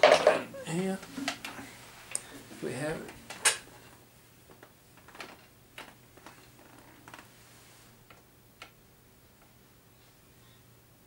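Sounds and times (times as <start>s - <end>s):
metal guitars clicking and knocking: 0.0s - 1.6s.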